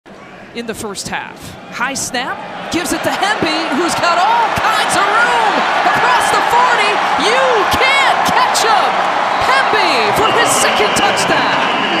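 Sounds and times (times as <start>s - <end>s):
stadium crowd cheering: 2.3s - 12.0s
people shouting and whooping: 2.7s - 12.0s.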